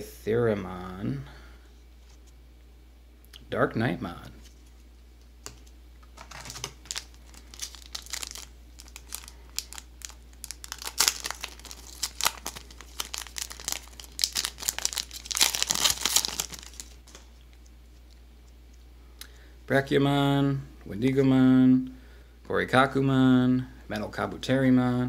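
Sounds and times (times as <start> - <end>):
foil wrapper crinkling and tearing: 6.2 - 17.3.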